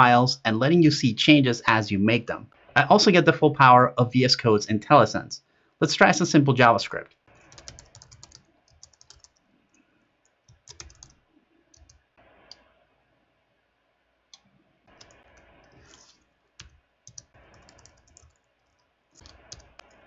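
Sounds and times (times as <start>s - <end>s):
computer keyboard typing: 7.4s - 9.4s, 10.5s - 12.6s, 14.9s - 20.0s.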